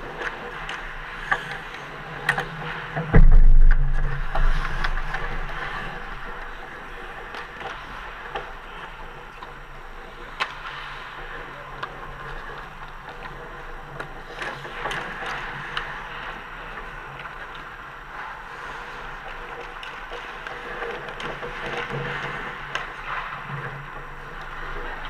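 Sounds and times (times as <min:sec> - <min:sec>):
steady low hum: 0:00.0 - 0:14.8
skate blades scraping ice: 0:00.0 - 0:25.0
sticks and puck clacking: 0:00.0 - 0:25.0.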